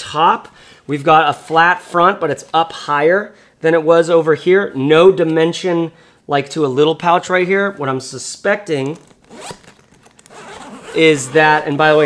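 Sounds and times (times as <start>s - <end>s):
zipper being pulled: 9.0s - 12.0s.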